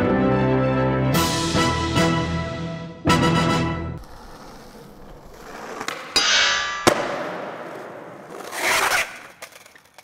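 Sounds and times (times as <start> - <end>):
bright metallic clang: 6.2 - 7.2.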